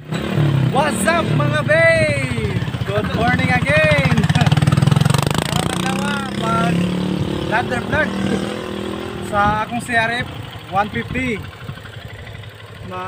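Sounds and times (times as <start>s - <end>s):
motorcycle engine idling: 0.0s - 13.0s
man talking: 0.7s - 4.7s, 5.3s - 11.5s, 12.8s - 13.0s.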